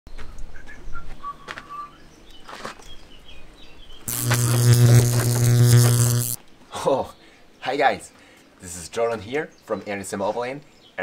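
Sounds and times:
loud electric buzz: 4.1 - 6.4.

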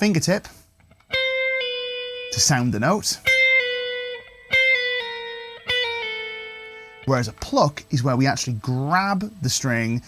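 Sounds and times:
electric guitar pull-offs: 0.8 - 7.6.

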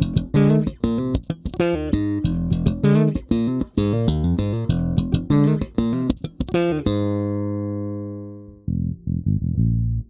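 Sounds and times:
dark electric bass playing: 0.0 - 10.0
electric bass note ringing: 6.8 - 10.0.

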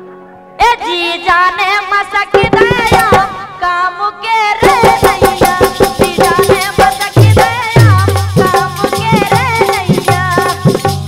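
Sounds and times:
fast percussion strokes: 2.3 - 3.5, 4.6 - 11.0.

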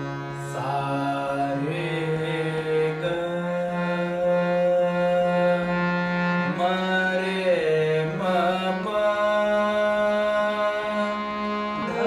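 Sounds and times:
harmonium holding a note: 0.0 - 12.0.

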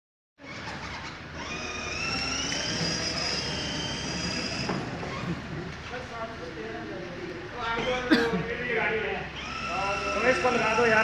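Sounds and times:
toy car electric motor whine: 0.4 - 5.6, 9.4 - 11.0.

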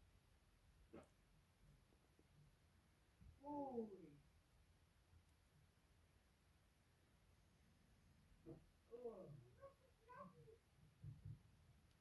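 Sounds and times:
soft low thuds: 10.9 - 11.7.

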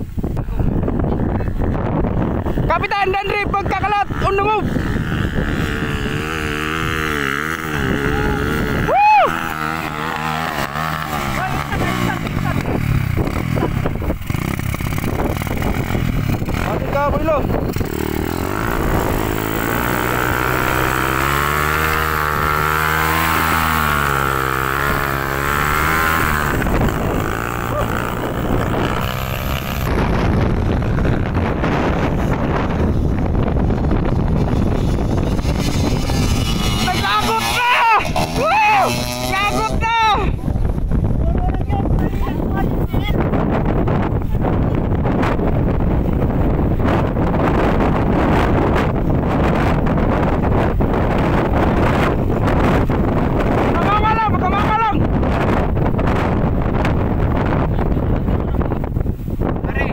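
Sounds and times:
dirt bike engines revving: 0.0 - 59.9.

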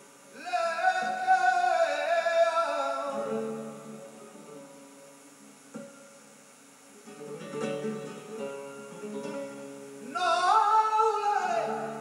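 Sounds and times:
flamenco guitar playing: 0.7 - 12.0.

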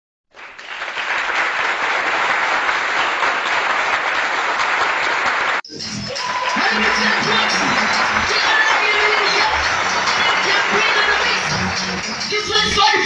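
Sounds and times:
applause: 0.3 - 13.0.

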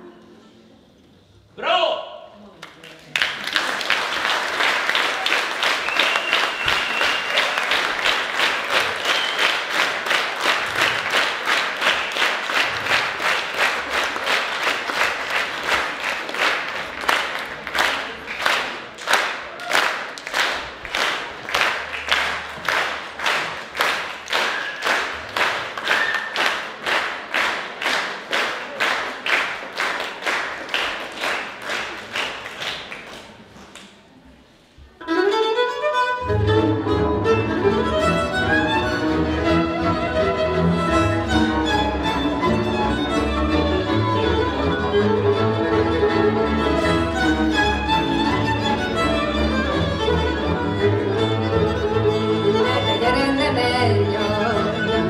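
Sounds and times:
audience rhythmic clapping: 2.6 - 34.2, 37.7 - 51.8.

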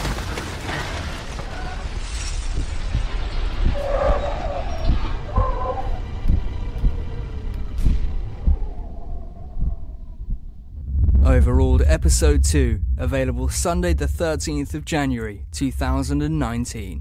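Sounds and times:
heavy low rumble: 1.1 - 17.0.

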